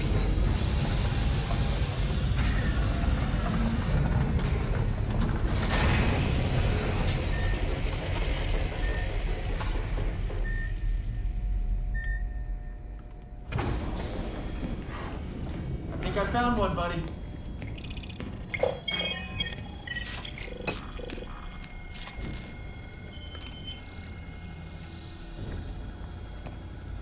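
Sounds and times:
heavy mechanical door opening: 0.0s - 11.2s
deep steady rumble: 20.8s - 27.0s.

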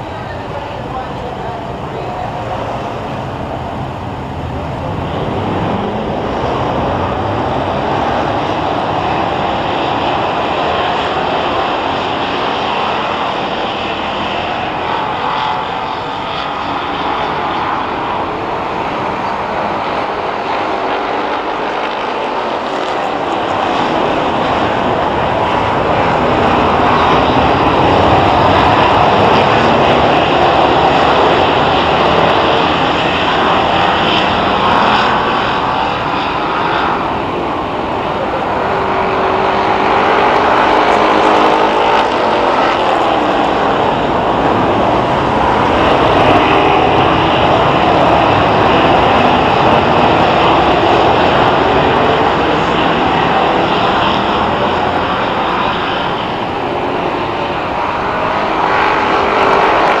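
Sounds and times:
racing car engines droning: 0.0s - 60.0s.

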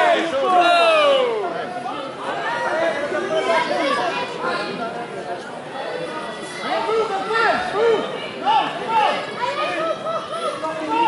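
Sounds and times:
crowd shouts: 0.0s - 4.4s, 5.7s - 11.0s
people talking and calling out: 0.0s - 11.0s.

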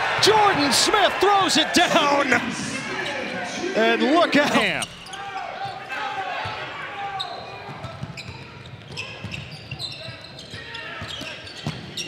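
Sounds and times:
murmur of voices echoing: 0.1s - 7.1s
sneaker squeaks: 4.8s - 5.9s, 7.1s - 12.0s.

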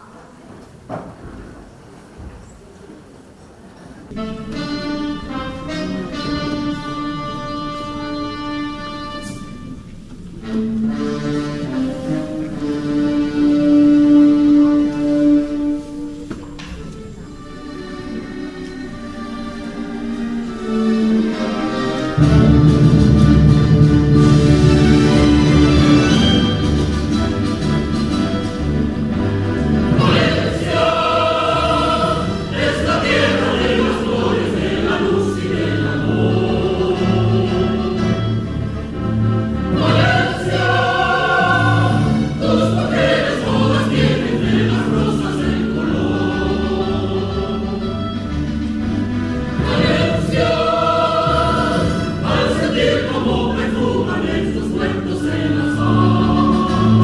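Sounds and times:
mixed choir singing: 29.6s - 38.6s, 39.5s - 48.1s, 49.4s - 57.0s.

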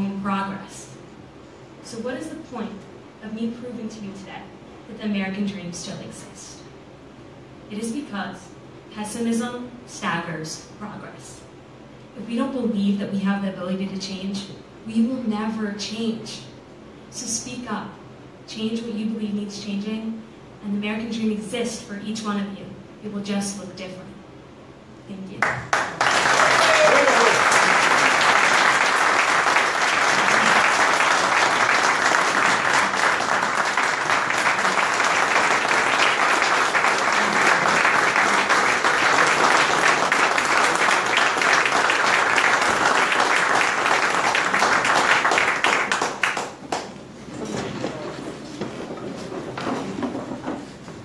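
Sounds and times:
audience applauding: 25.4s - 46.9s.

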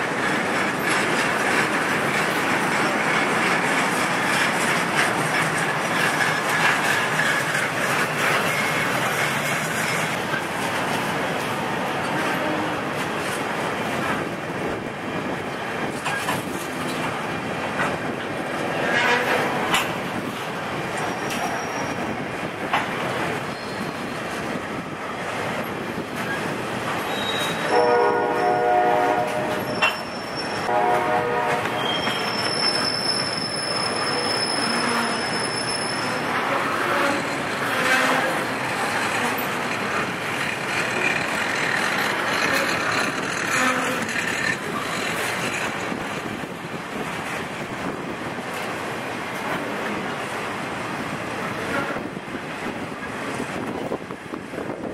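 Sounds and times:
freight train wheels clattering: 0.0s - 54.9s
train horn blasts: 18.8s - 19.6s, 27.1s - 29.9s, 30.6s - 32.3s, 36.4s - 38.6s
high-pitched wheel squeal: 23.5s - 24.2s, 27.1s - 27.8s, 29.6s - 30.7s, 31.8s - 38.3s.

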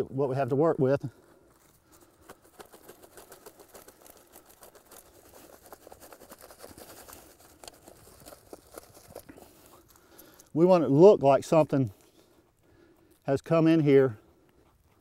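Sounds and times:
soil sifting through wire mesh: 2.0s - 12.0s.

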